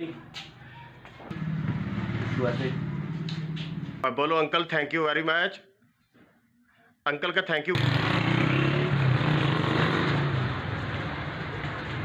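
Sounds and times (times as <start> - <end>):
vehicle engines: 0.3 - 4.0, 7.7 - 12.0
motorcycles: 1.3 - 4.0, 7.7 - 12.0.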